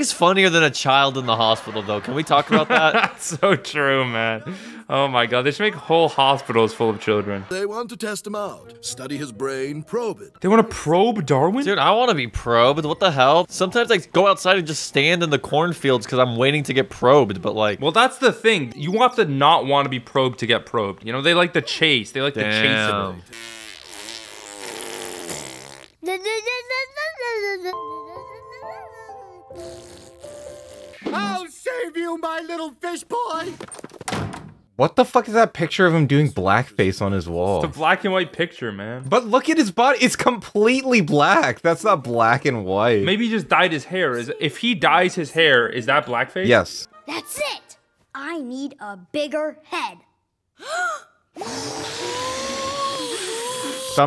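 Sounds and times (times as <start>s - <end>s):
cartoon girl blowing a raspberry: 22.6s - 26.2s, 29.5s - 31.2s, 50.6s - 54.0s
girl singing high la la notes: 26.2s - 29.4s
cartoon inflating hiss and whine: 51.4s - 54.0s.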